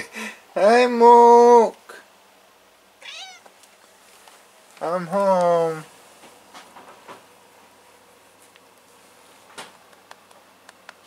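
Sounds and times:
cat meowing: 3.0s - 3.5s.

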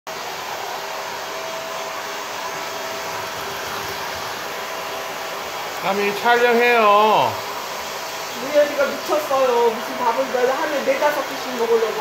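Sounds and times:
faint motor whine: 0.1s - 12.0s
hair dryer rushing air: 0.1s - 12.0s.

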